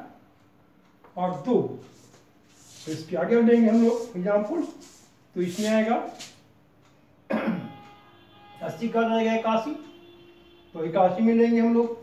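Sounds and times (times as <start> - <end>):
man coughing: 7.3 - 7.8.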